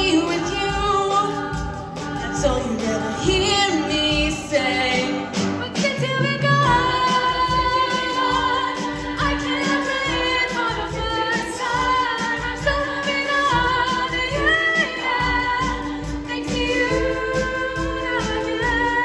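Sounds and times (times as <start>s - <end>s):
drum kit beat: 0.0s - 19.0s
women's choir singing pop song: 0.0s - 19.0s.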